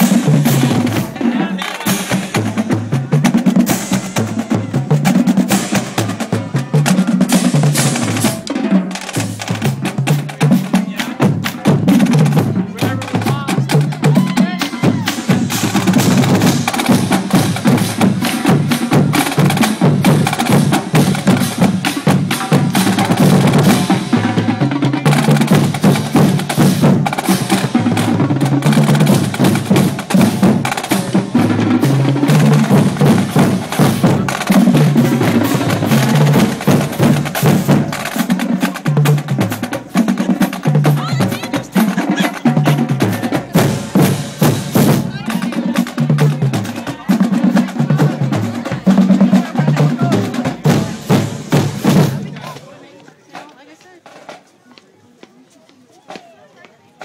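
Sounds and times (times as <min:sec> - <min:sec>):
marching bass drums: 0:00.0 - 0:54.4.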